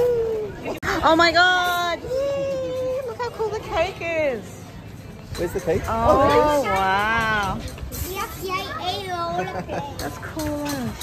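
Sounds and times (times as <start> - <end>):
children chattering: 8.0 - 11.0.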